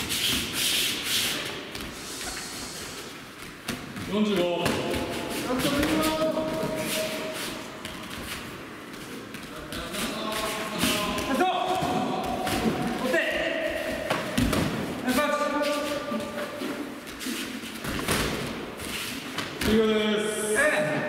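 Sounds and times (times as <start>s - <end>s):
bare feet on mats: 0.0s - 19.8s.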